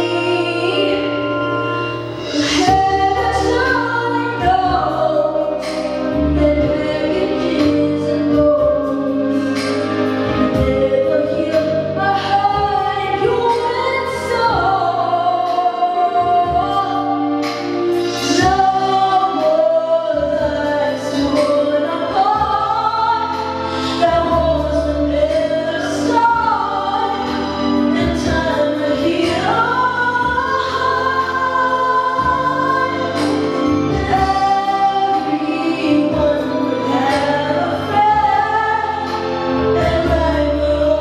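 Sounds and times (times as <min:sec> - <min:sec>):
backing music: 0:00.0 - 0:41.0
woman singing: 0:00.0 - 0:41.0.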